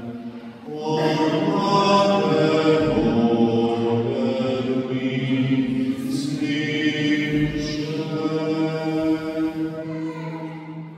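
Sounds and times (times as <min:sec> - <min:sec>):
chanting with held notes: 0:00.0 - 0:10.9.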